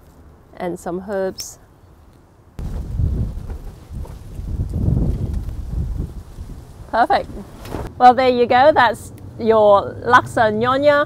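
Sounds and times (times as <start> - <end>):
wind buffeting microphone: 2.6 - 8.0.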